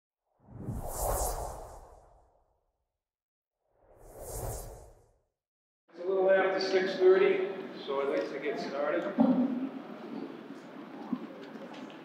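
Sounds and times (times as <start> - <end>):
whoosh with deep rumble: 0.4 - 2.4, 3.8 - 5.2.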